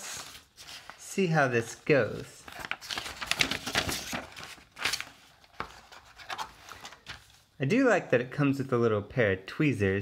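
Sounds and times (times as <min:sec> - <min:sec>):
paper sheet rustling: 0:00.0 - 0:07.5.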